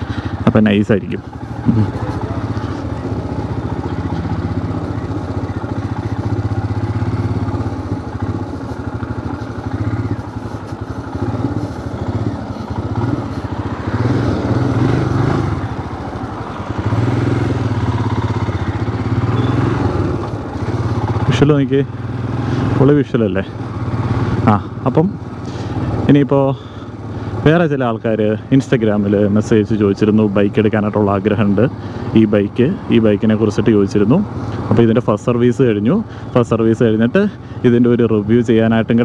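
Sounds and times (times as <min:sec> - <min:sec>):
motorcycle engine running: 0:00.0 - 0:39.0
wind and road noise: 0:00.0 - 0:39.0.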